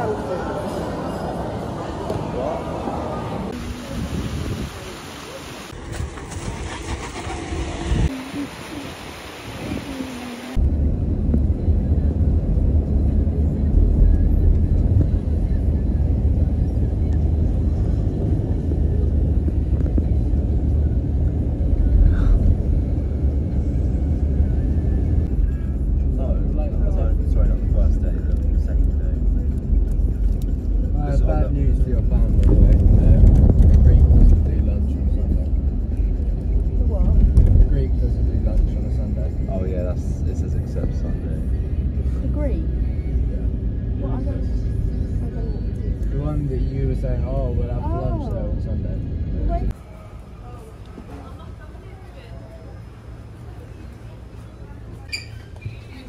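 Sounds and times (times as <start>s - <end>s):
engine and tyres rumbling: 0.0s - 56.0s.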